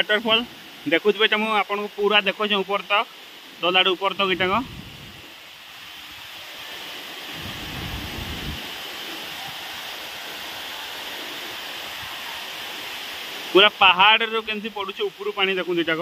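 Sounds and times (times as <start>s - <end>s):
waterfall rushing: 0.0s - 16.0s.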